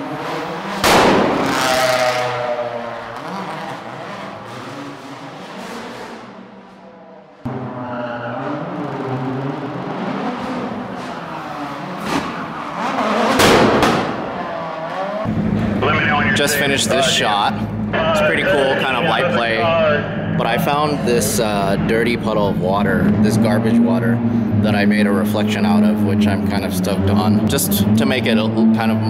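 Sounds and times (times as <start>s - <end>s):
race car passing in tunnel: 0.0s - 29.0s.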